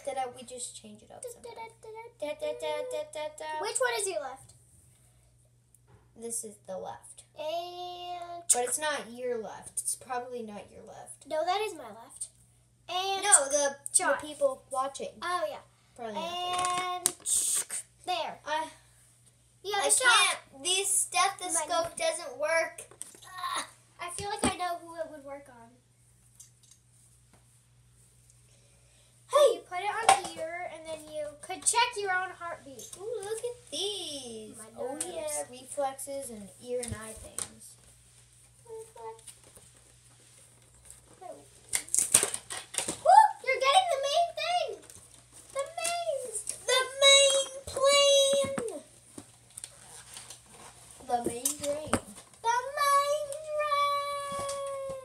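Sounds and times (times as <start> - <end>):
toy packaging clicks: 41.7 - 43.0.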